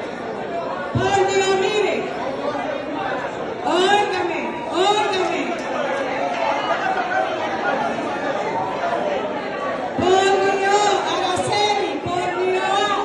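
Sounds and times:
people talking in echoing hall: 0:00.0 - 0:13.0.

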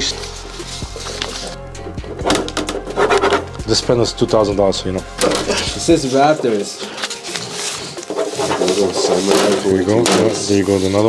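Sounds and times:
background music: 0:00.0 - 0:11.0
man speaking: 0:03.6 - 0:06.8.

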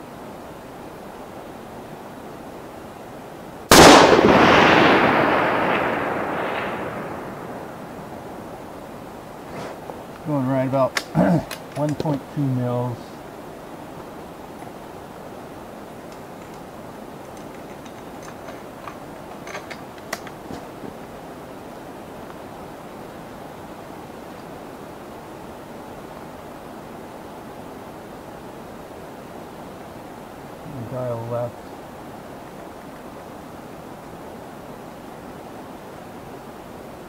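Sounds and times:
faint clicks: 0:16.0 - 0:20.7.

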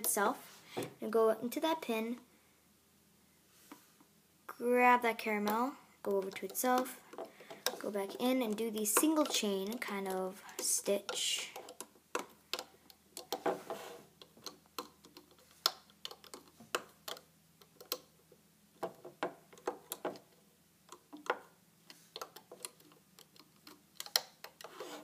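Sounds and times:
light clicks and taps: 0:18.8 - 0:24.8.

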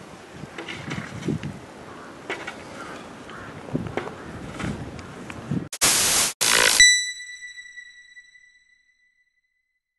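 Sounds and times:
bursts of hissing noise: 0:05.8 - 0:06.8.

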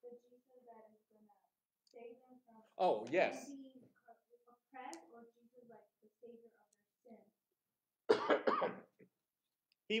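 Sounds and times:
man coughing: 0:08.1 - 0:08.9.

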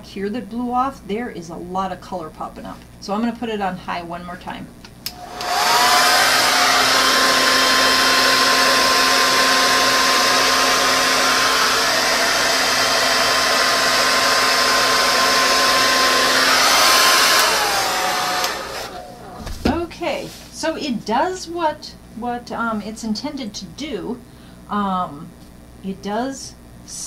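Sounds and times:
hair dryer running: 0:05.1 - 0:19.5.

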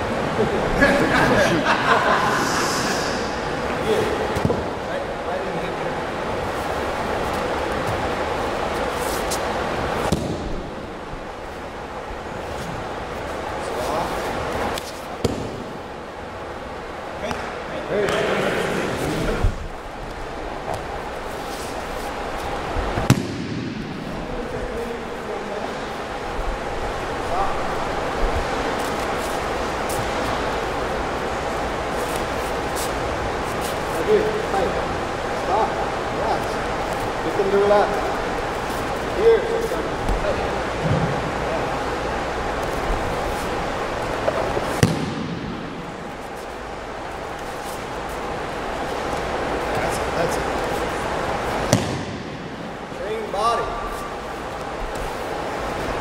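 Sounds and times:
room noise: 0:00.0 - 0:56.0
low voices: 0:00.3 - 0:06.0
bodies slapping wrestling mat: 0:15.2 - 0:15.6, 0:44.2 - 0:45.6, 0:51.6 - 0:52.2.

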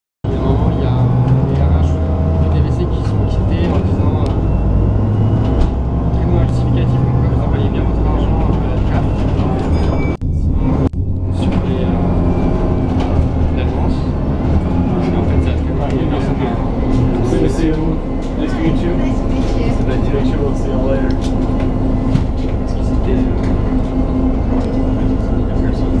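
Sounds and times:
bus engine drone: 0:00.2 - 0:26.0
road noise: 0:00.2 - 0:26.0
pulsing hum: 0:00.3 - 0:26.0.

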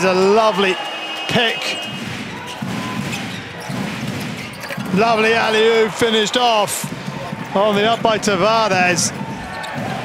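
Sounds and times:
basketball bouncing on court: 0:01.8 - 0:10.0.

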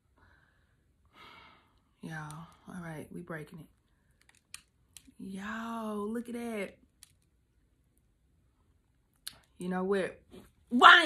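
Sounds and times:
soft breath: 0:00.0 - 0:01.9.

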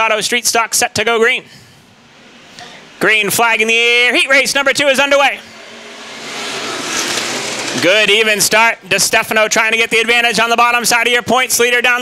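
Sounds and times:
race car engines accelerating: 0:02.0 - 0:10.8.

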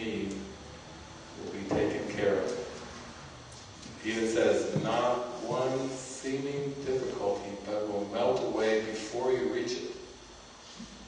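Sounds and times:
man speaking: 0:00.0 - 0:00.6, 0:01.4 - 0:02.8, 0:04.0 - 0:10.1.

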